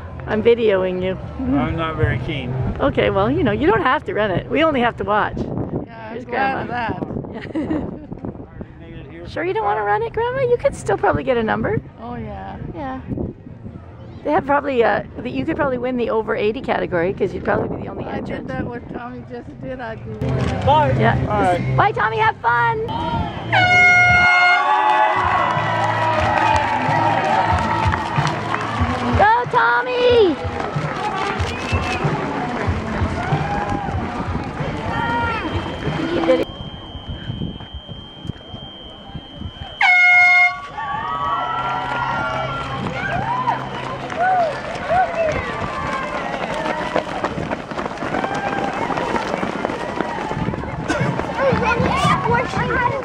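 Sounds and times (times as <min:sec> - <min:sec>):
spectators cheering and chattering: 0:00.0 - 0:19.0, 0:19.9 - 0:53.0
runners' footsteps on asphalt: 0:22.9 - 0:38.7, 0:39.6 - 0:53.0
overlapping voices of onlookers: 0:24.7 - 0:36.5, 0:40.8 - 0:53.0.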